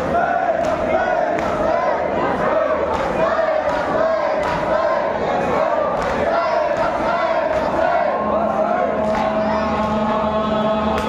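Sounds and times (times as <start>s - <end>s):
crowd of men chanting: 0.0s - 11.0s
rhythmic chest-beating: 0.0s - 11.0s.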